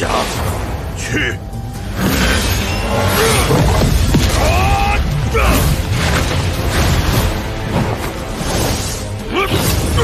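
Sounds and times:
dramatic orchestral score: 0:00.0 - 0:10.0.

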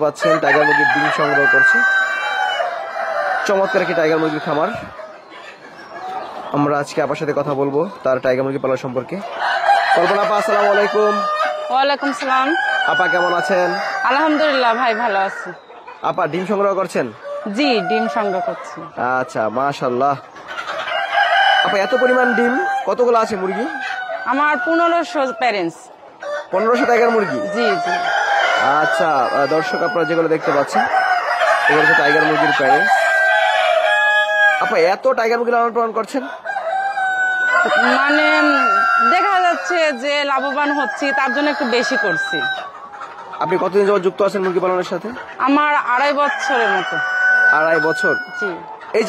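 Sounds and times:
rooster crowing: 0:00.0 - 0:05.2, 0:08.7 - 0:15.7, 0:16.4 - 0:19.3, 0:20.8 - 0:35.3, 0:36.1 - 0:42.8, 0:45.4 - 0:49.0
chickens clucking: 0:00.0 - 0:49.0.

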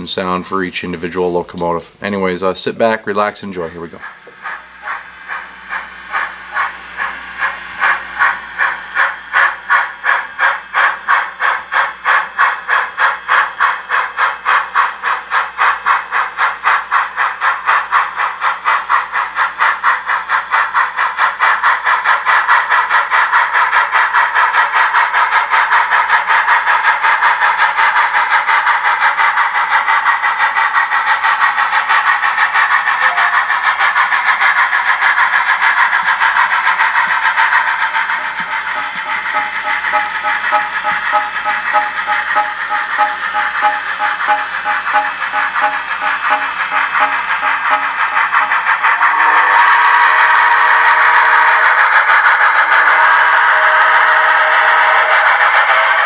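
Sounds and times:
steam exhaust chuffs through speakers: 0:00.0 - 0:56.0.

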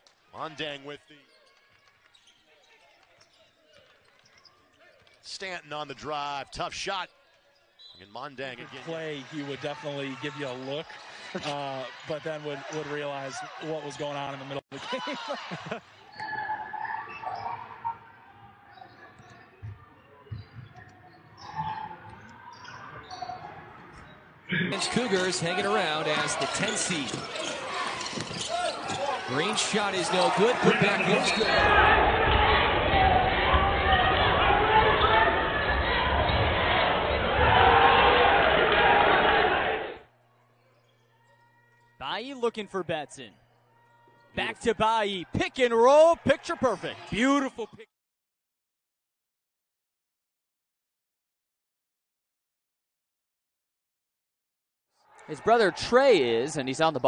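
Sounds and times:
basketball play noise: 0:16.1 - 0:38.1
voices: 0:24.5 - 0:32.1.

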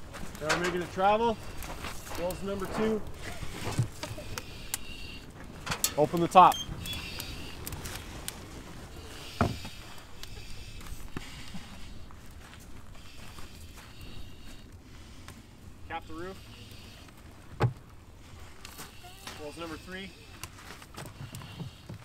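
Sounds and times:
fire rumbling and hissing: 0:00.0 - 0:22.0.

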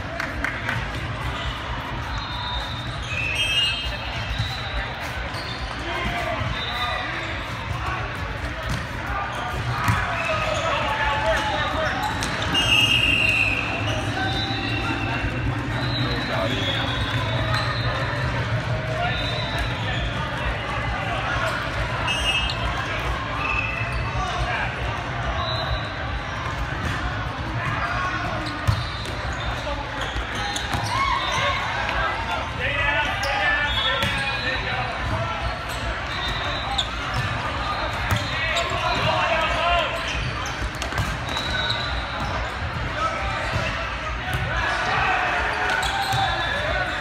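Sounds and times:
many voices echoing: 0:02.6 - 0:25.4
balls struck and bouncing: 0:08.4 - 0:10.1.

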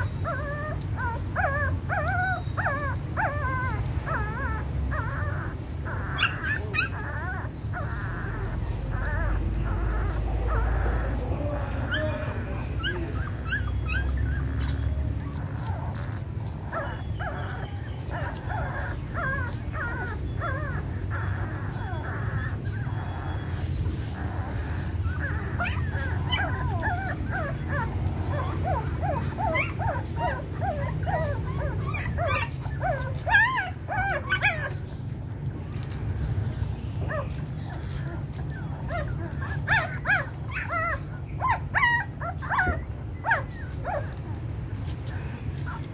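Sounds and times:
puppies squeaking and whimpering: 0:00.0 - 0:45.9.

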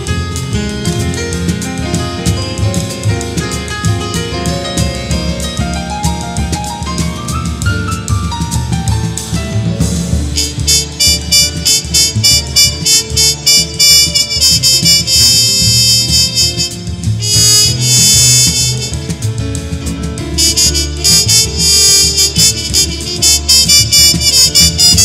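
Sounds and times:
bass: 0:00.0 - 0:25.0
drum kit beat: 0:00.0 - 0:25.0
piano: 0:00.0 - 0:25.0
wind instrument lead: 0:00.0 - 0:25.0.

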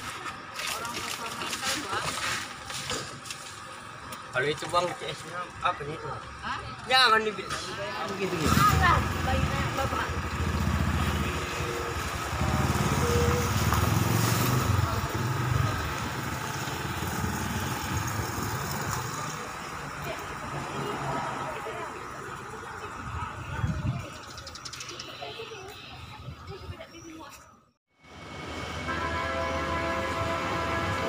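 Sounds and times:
people's voices: 0:00.0 - 0:27.7
vehicle engine rumbling: 0:00.0 - 0:31.0.

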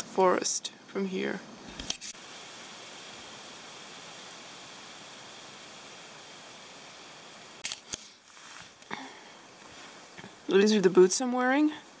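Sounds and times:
outdoor ambient hiss: 0:00.0 - 0:12.0.

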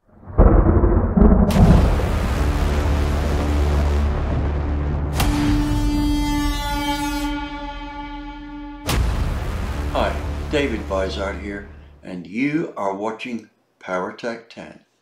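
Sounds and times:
deep rumbling boom: 0:00.0 - 0:12.0
cinematic intro music: 0:00.1 - 0:12.0
sharp hits: 0:00.2 - 0:03.7, 0:05.2 - 0:11.0.

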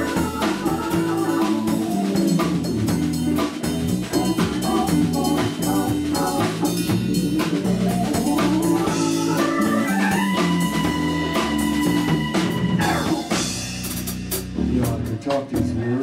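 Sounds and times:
live band playing instrumental: 0:00.0 - 0:16.0
held high keyboard note: 0:07.6 - 0:13.6.

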